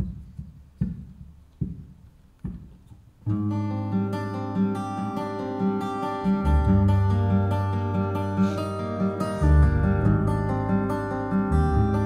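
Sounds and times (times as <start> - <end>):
low knocks counting in: 0.0 - 3.1.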